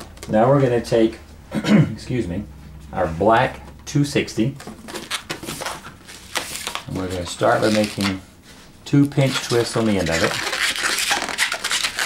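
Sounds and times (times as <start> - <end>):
balloon rubbed between hands: 9.3 - 12.0.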